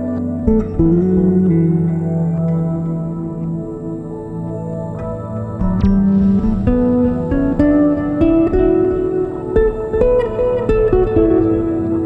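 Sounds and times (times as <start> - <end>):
plucked-string melody: 0.0 - 12.0.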